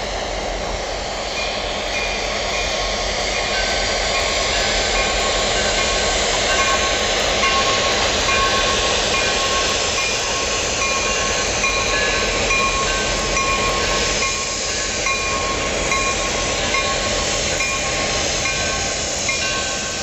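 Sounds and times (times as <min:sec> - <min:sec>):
diesel locomotives running: 0:00.0 - 0:20.0.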